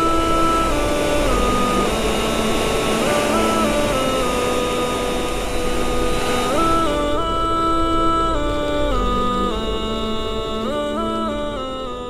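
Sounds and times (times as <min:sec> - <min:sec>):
steady rushing hiss: 0:00.0 - 0:11.3
sustained chords music: 0:00.0 - 0:12.0.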